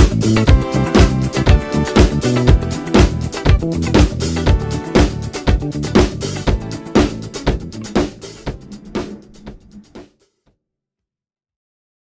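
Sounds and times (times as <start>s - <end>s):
disco-funk backing track: 0.0s - 10.0s
drum kit hits: 4.0s - 10.0s.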